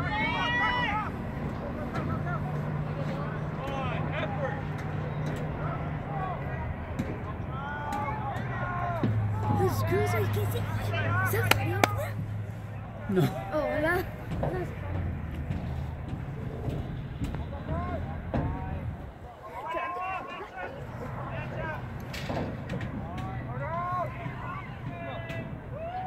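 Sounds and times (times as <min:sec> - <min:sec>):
people shouting: 0:00.0 - 0:01.2, 0:07.5 - 0:12.2, 0:23.0 - 0:26.0.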